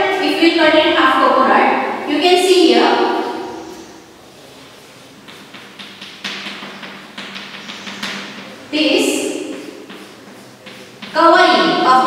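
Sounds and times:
chalk scraping on chalkboard: 2.1s - 12.0s.

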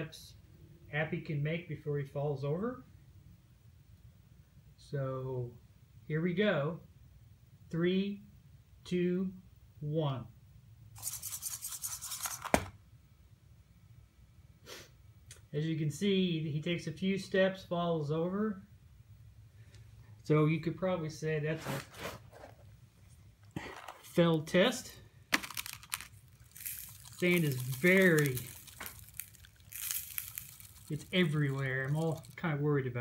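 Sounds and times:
sand falling hiss: 26.4s - 32.4s.

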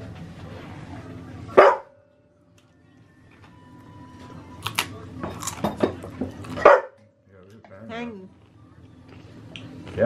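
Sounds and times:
dog barking: 1.6s - 2.0s, 6.6s - 7.0s.

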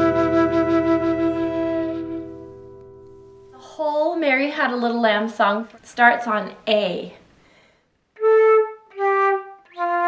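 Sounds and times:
flute holding wavering note: 0.0s - 3.0s, 8.2s - 10.0s
sustained chord: 0.0s - 3.8s.

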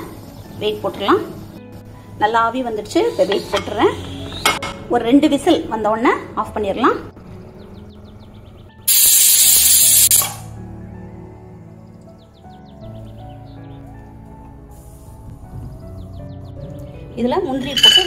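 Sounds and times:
background music: 0.0s - 18.0s
pressure cooker venting steam: 8.9s - 10.4s.

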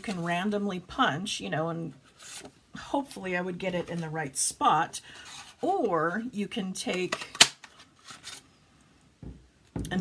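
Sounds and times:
card rustling: 5.2s - 8.6s
dull knocks: 9.2s - 10.0s.

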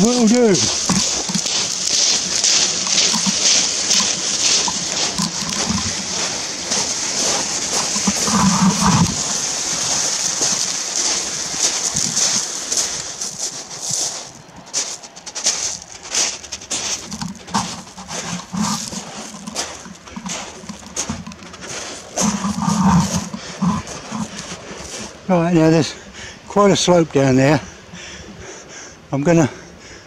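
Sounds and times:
shingle crunching under barrow wheels: 0.0s - 25.3s
footsteps on shingle: 0.0s - 26.0s.

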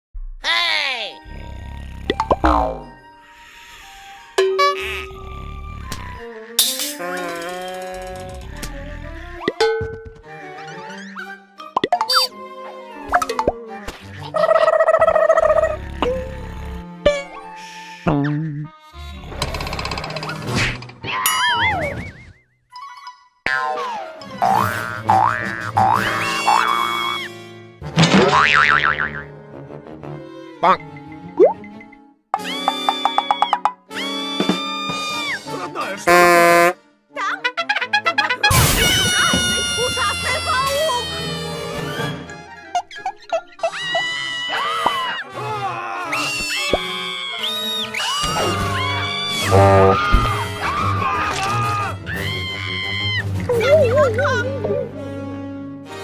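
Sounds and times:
cartoon music: 2.1s - 3.2s, 10.8s - 12.4s, 14.2s - 16.3s, 22.7s - 27.4s, 32.4s - 35.4s, 36.1s - 41.6s, 46.2s - 51.6s, 53.0s - 55.2s.

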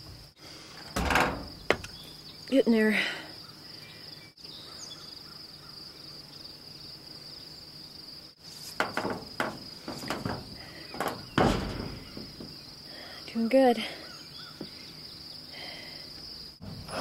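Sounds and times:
irregular knocks and rustles: 0.0s - 2.2s, 8.4s - 12.9s
insects chirring: 0.0s - 17.0s.

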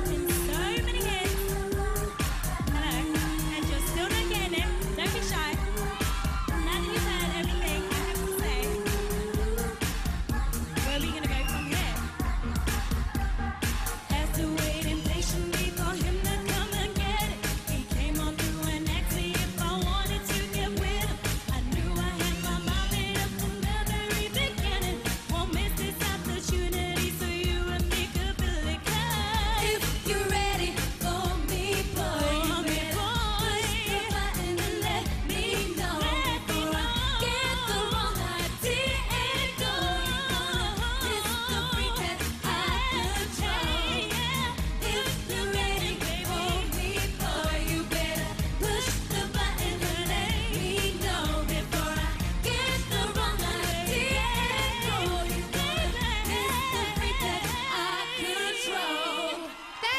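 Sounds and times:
bass: 0.0s - 58.0s
drums: 0.0s - 58.6s
women singing: 0.0s - 59.9s.

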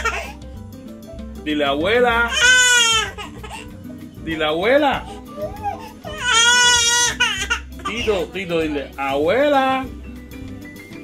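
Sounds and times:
baby crying: 0.0s - 0.4s, 2.2s - 3.8s, 4.9s - 8.2s.

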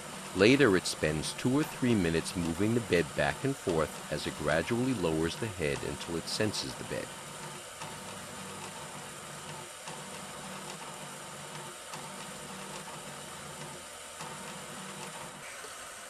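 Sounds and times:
stepper motor hum: 0.0s - 16.0s.

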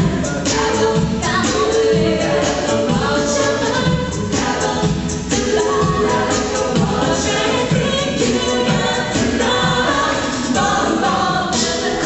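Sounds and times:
a cappella group singing: 0.0s - 12.0s
vocal percussion beat: 0.0s - 12.0s.

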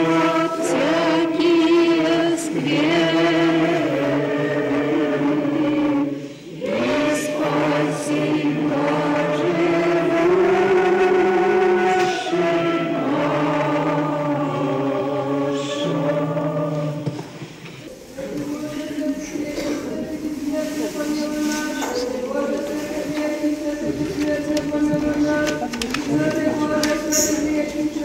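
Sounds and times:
group singing chant: 0.0s - 28.0s.

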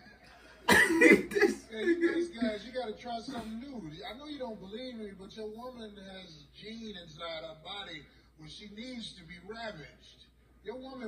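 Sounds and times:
man coughing: 0.6s - 2.6s
voice: 0.7s - 11.0s.

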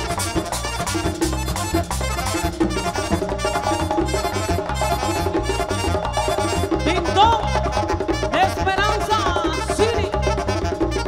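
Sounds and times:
button accordion: 0.0s - 11.0s
congas: 0.0s - 11.0s
electric bass: 0.0s - 11.0s
saxophone: 0.0s - 11.0s
tambora drum: 0.0s - 11.0s.

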